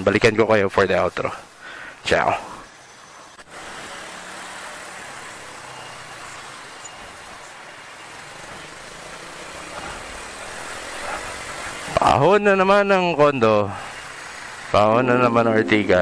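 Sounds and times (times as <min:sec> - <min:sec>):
road noise: 0:00.0 - 0:16.0.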